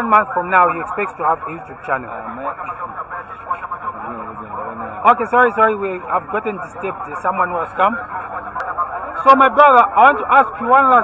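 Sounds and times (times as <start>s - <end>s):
background voices talking: 0.0s - 11.0s
close-up interview voices: 0.0s - 11.0s.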